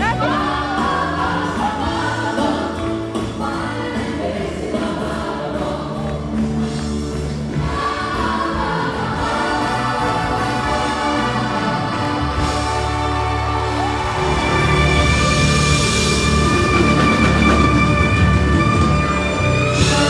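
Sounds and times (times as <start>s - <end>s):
live band playing: 0.0s - 20.0s
chorus singing held notes: 7.6s - 17.5s.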